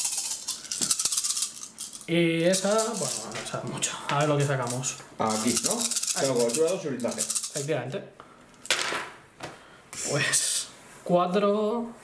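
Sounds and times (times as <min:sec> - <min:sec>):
plastic dice rattling: 0:00.0 - 0:03.3, 0:04.5 - 0:07.7.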